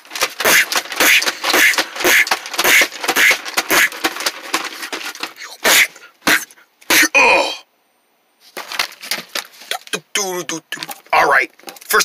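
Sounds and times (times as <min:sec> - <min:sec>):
nylon bag rustling on floor: 0:08.4 - 0:09.7.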